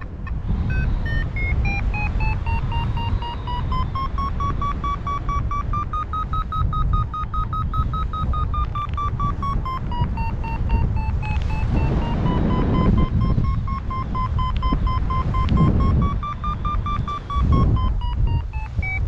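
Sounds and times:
variometer beeps rising in pitch: 0:00.0 - 0:19.0
wind rumble on microphone: 0:00.0 - 0:19.0.

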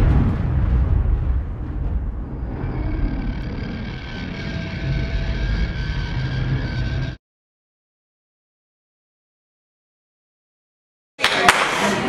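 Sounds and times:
deep steady rumble: 0:00.0 - 0:07.2
sudden boom: 0:00.0 - 0:07.2.

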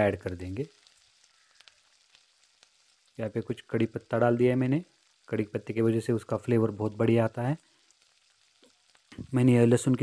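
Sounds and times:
faint popping seeds: 0:00.0 - 0:10.0
hot oil sizzling: 0:00.0 - 0:10.0.

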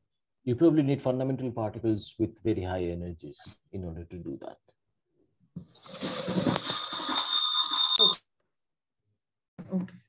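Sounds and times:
hissing noise: 0:05.8 - 0:07.8
steady high whistling tones: 0:06.0 - 0:08.2.

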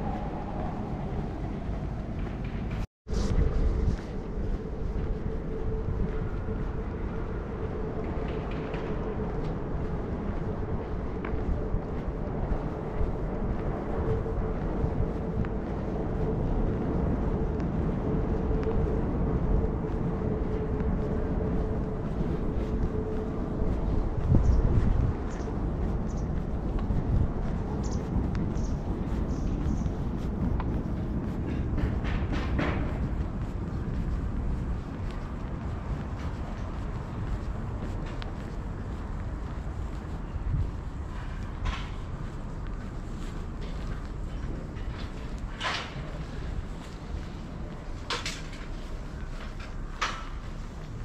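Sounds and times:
low rumble: 0:00.0 - 0:51.0
wind rumble on microphone: 0:00.0 - 0:51.0.

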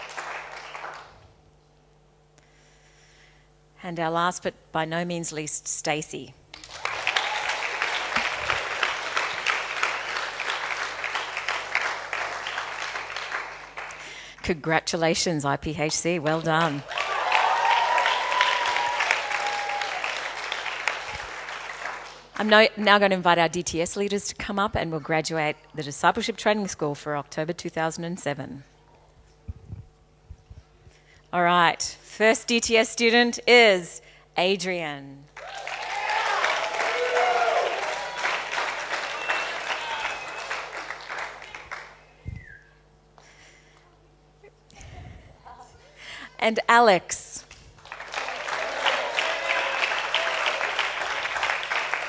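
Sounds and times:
audience applauding: 0:00.0 - 0:01.2, 0:06.6 - 0:14.0, 0:16.5 - 0:22.3, 0:35.4 - 0:42.0, 0:47.8 - 0:52.0
people cheering: 0:06.6 - 0:13.4, 0:16.8 - 0:21.9, 0:35.4 - 0:41.9, 0:48.0 - 0:52.0.

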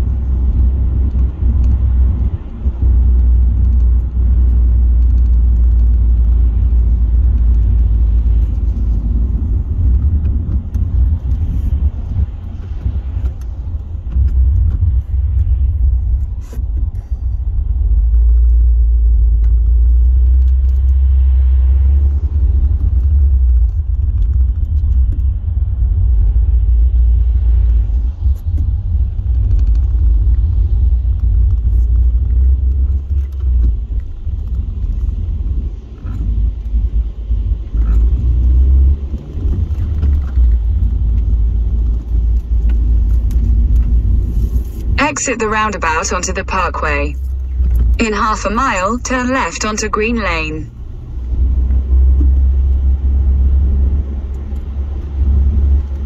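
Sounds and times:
car driving heard from inside: 0:00.0 - 0:56.0.

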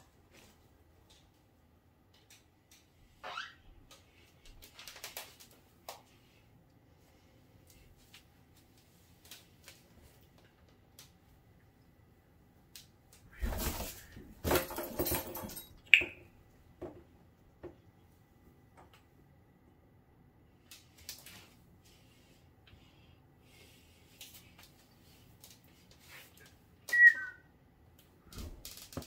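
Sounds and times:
parrot chirp: 0:26.9 - 0:27.4.

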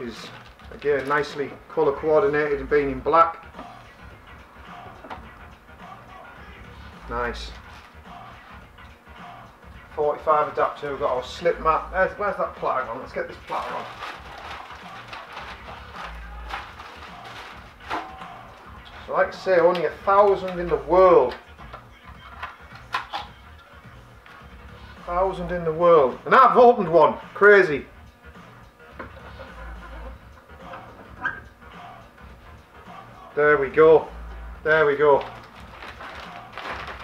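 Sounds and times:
faint background music: 0:00.0 - 0:37.0
packaging rustling: 0:00.1 - 0:01.5, 0:13.4 - 0:18.4, 0:35.0 - 0:37.0.

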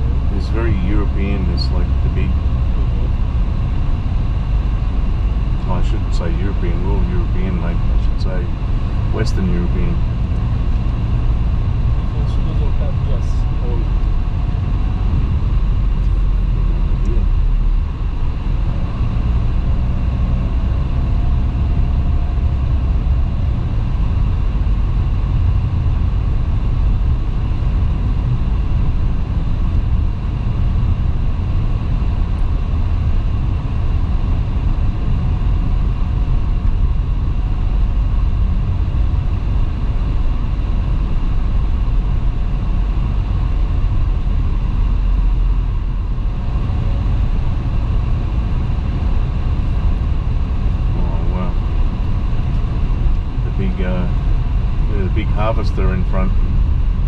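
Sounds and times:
car cabin road and engine rumble: 0:00.0 - 0:57.0.

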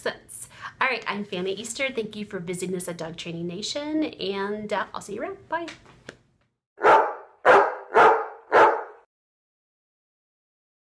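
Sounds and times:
dog barking: 0:06.8 - 0:09.1.

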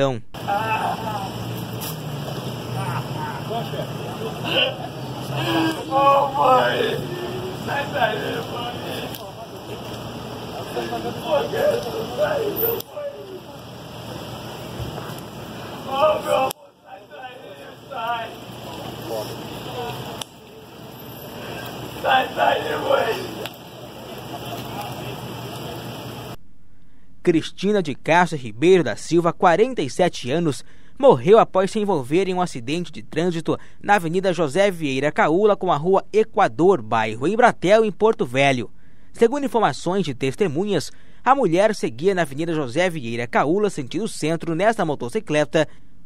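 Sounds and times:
indistinct voices talking: 0:00.0 - 0:26.4
street noise hiss: 0:00.0 - 0:26.4
steady low hum: 0:00.1 - 0:34.2.

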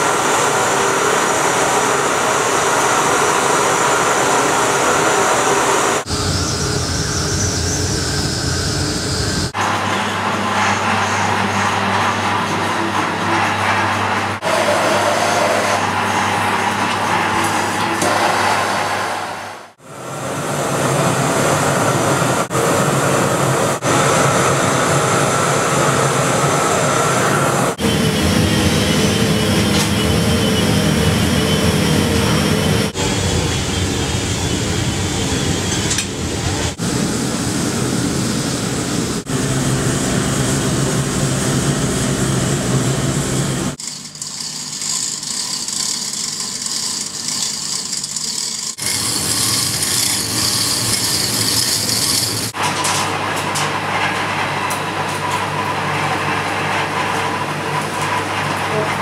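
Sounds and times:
gas burner roaring: 0:00.0 - 0:58.8.

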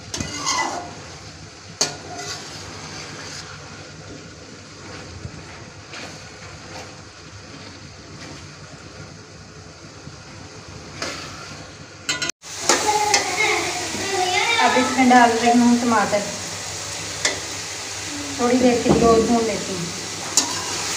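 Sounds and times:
metal spatula scraping a pot: 0:00.0 - 0:01.1, 0:01.8 - 0:03.8, 0:20.4 - 0:20.9
vegetables sizzling in a pot: 0:00.0 - 0:20.9.

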